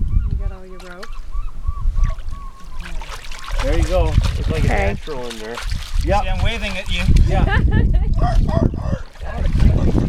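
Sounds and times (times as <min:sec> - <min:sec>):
honking bird calls: 0:00.7 - 0:03.6.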